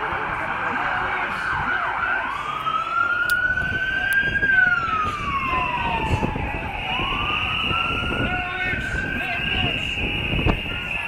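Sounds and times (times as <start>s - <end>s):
marching crowd noise: 0.0s - 11.0s
siren wailing: 0.0s - 11.0s.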